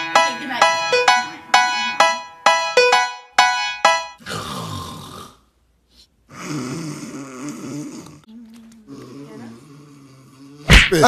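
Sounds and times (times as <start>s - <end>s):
person snoring loudly: 4.2s - 5.5s, 6.3s - 8.3s, 8.9s - 11.0s.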